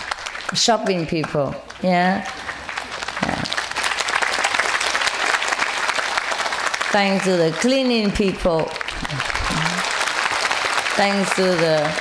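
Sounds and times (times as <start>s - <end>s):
audience clapping: 0.0s - 12.0s.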